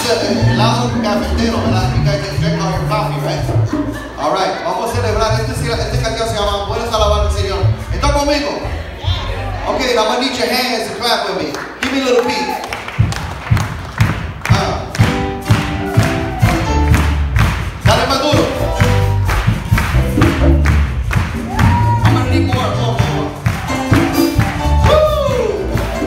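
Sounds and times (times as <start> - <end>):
live band playing upbeat song: 0.0 - 9.7, 12.8 - 26.0
low bass notes: 0.0 - 9.9, 13.0 - 26.0
drum beat: 12.8 - 26.0.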